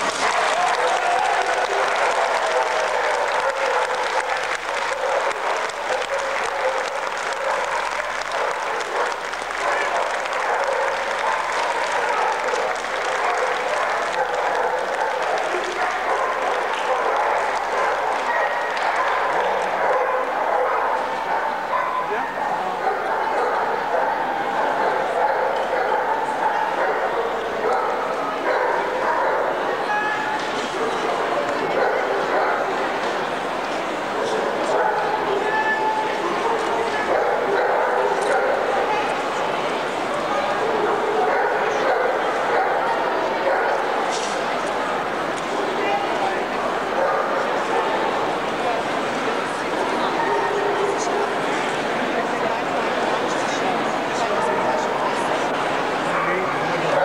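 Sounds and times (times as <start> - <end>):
dogs barking: 0.0 - 33.3, 34.1 - 49.0, 49.6 - 51.8, 53.8 - 57.0
crowd chatter in a large hall: 0.0 - 57.0.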